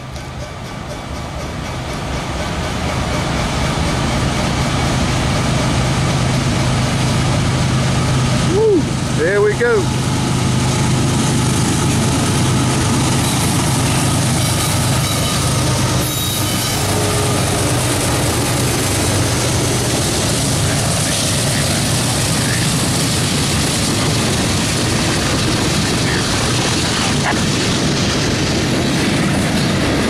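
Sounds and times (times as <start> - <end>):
locomotive engines droning: 0.0 - 30.0.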